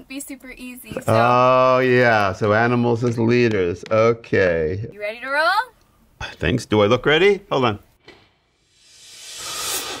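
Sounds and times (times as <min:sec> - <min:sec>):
rising whoosh: 0:08.6 - 0:10.0.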